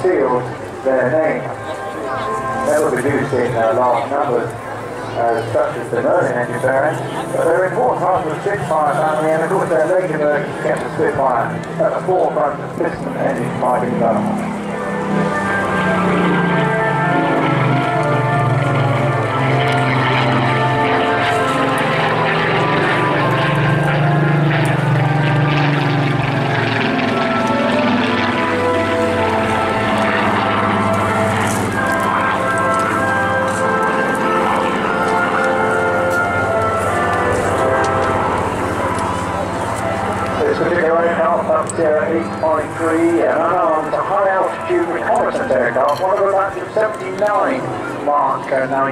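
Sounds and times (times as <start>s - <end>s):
aircraft engine drone: 0.0s - 48.9s.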